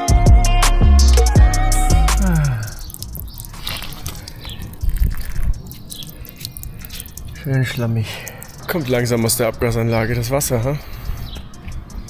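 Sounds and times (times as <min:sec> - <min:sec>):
background music: 0:00.0 - 0:03.1
water dripping from exhaust pipe: 0:01.3 - 0:12.0.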